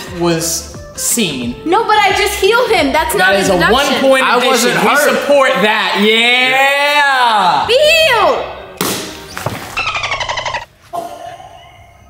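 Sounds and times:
rising squeal: 0:09.7 - 0:10.7.

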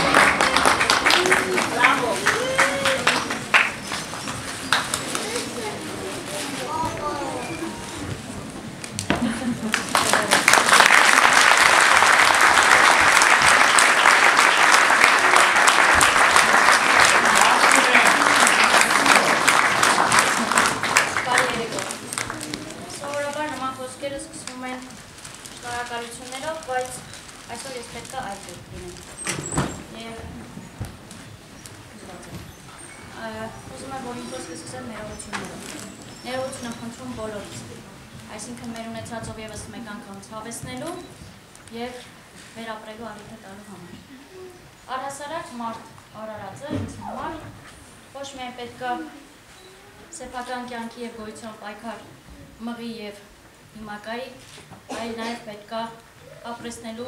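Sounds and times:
handclaps: 0:00.0 - 0:05.3, 0:08.9 - 0:22.6
murmuring voices: 0:00.0 - 0:25.2, 0:29.9 - 0:39.9, 0:43.3 - 0:44.8.

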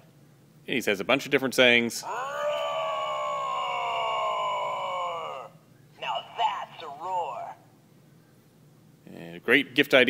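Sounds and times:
toy roar: 0:02.0 - 0:05.6
person speaking: 0:06.0 - 0:07.6.

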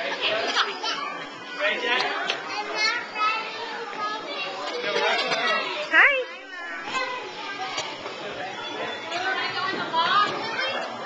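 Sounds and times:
children playing and chattering: 0:00.0 - 0:11.0.

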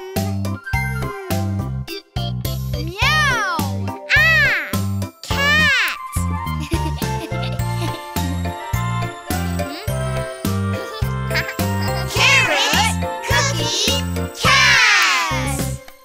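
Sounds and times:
bouncy children's song: 0:00.0 - 0:16.0.

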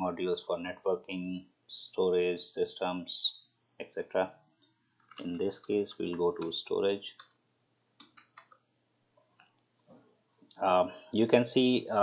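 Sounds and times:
keystrokes on computer keyboard: 0:05.0 - 0:07.4, 0:08.0 - 0:08.6.

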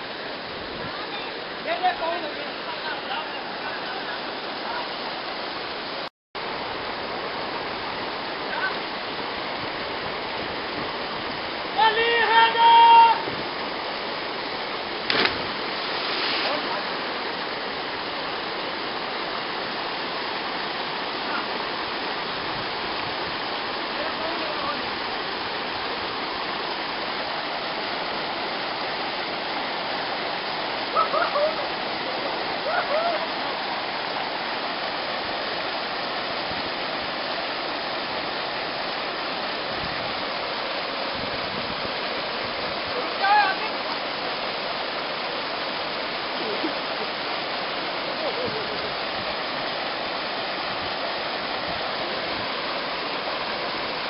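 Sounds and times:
waterfall rushing: 0:00.0 - 0:54.0
voices calling: 0:30.9 - 0:33.3.

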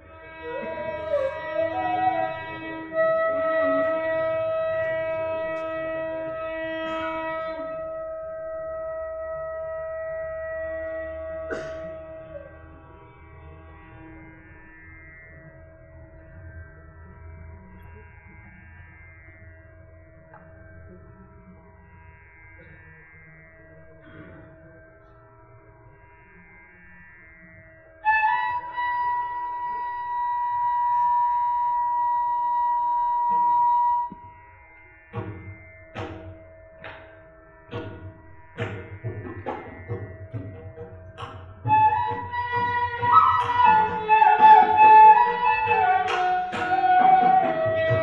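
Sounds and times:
bamboo flute long note: 0:00.4 - 0:12.6, 0:28.0 - 0:34.3, 0:41.6 - 0:48.0.

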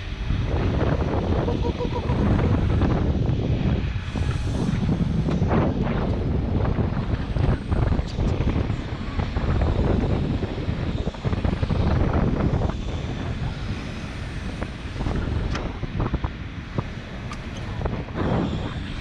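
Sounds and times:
wind buffeting microphone: 0:00.0 - 0:19.0.

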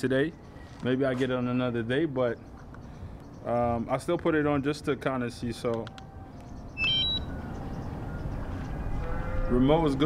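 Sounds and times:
remote controller electronic beep: 0:06.7 - 0:08.4.

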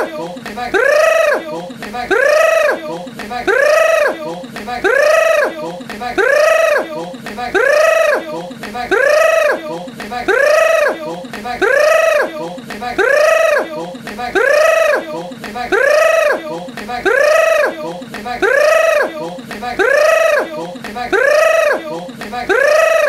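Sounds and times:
person's high-pitched cry: 0:00.0 - 0:23.0.

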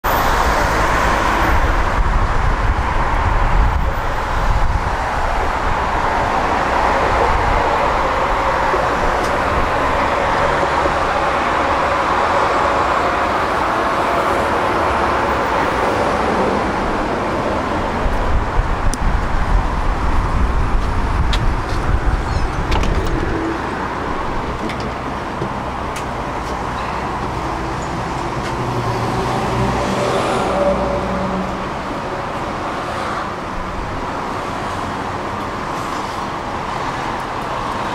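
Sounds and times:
road traffic passing: 0:00.0 - 0:37.9
tram pulling in and stopping: 0:00.0 - 0:37.9.

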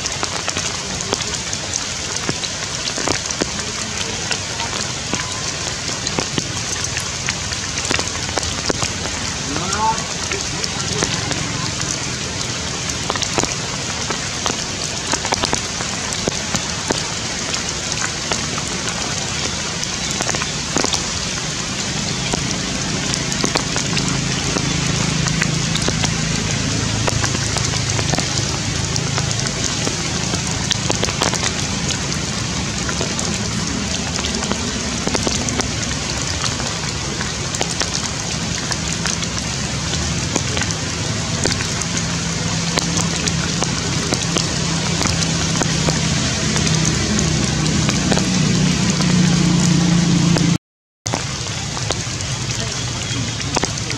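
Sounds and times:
rain pattering on leaves: 0:00.0 - 0:53.9.

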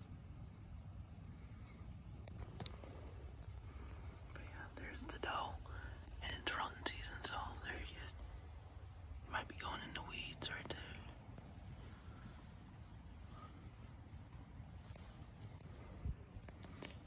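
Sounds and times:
low rumble: 0:00.0 - 0:17.0
sharp clicks: 0:01.6 - 0:03.0
man whispering: 0:03.9 - 0:12.5.

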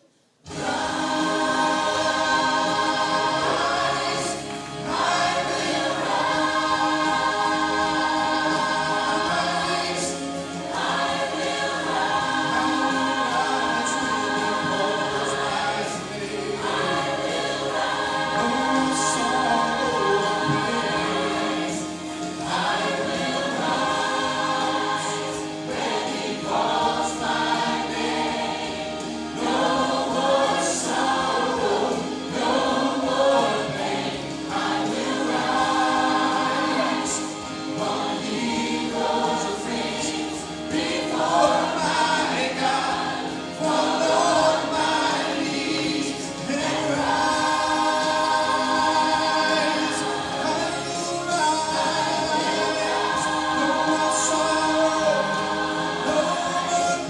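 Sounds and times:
choir singing gospel song: 0:00.2 - 0:57.0.

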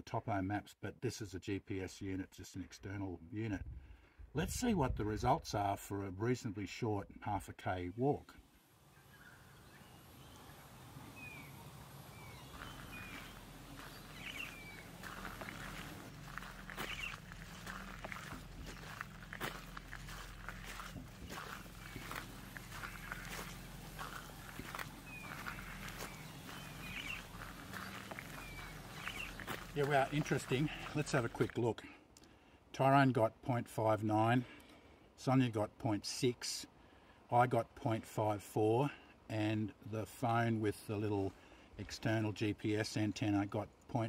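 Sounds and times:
bird chirping: 0:08.8 - 0:31.4
footsteps crunching on gravel: 0:09.6 - 0:31.7.

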